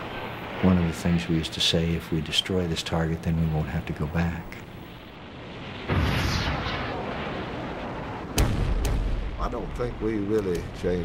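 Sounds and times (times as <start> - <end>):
explosions: 4.6 - 11.0
gunfire: 8.3 - 9.5.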